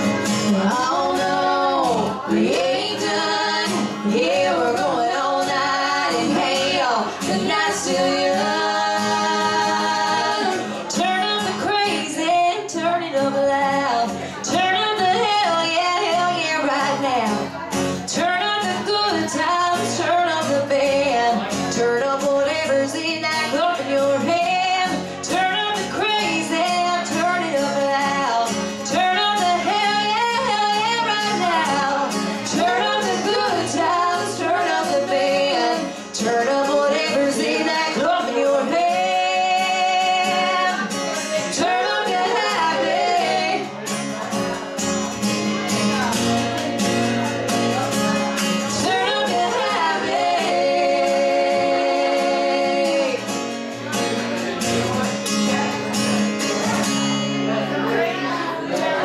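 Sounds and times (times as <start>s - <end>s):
acoustic guitar: 0.0s - 59.0s
women singing in harmony: 0.3s - 17.5s, 18.1s - 43.8s, 48.7s - 53.3s.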